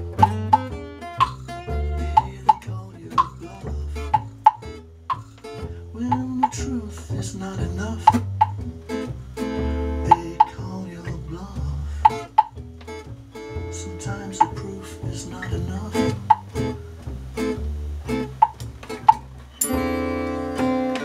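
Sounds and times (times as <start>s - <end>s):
acoustic guitar strumming: 0.0s - 21.0s
upright double bass: 0.0s - 21.0s.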